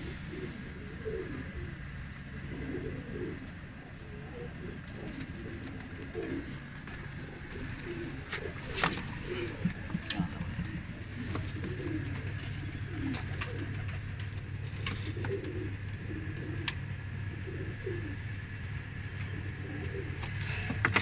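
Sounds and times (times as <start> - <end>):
pigeons cooing: 0.0 - 21.0
steady low hum: 0.0 - 21.0.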